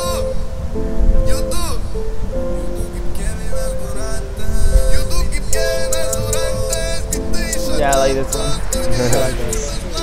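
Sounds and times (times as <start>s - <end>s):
held synth notes: 0.0s - 10.0s.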